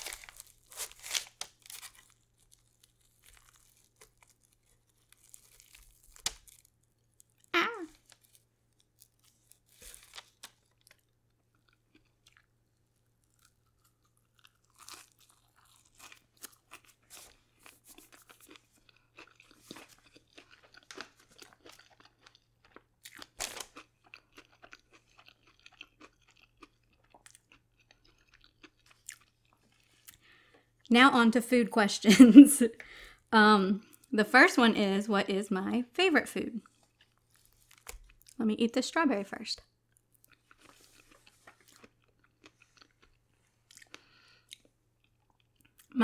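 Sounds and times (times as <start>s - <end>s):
soft chewing with light crunch: 0.0s - 30.9s, 33.8s - 34.1s, 36.6s - 38.4s, 39.6s - 46.0s.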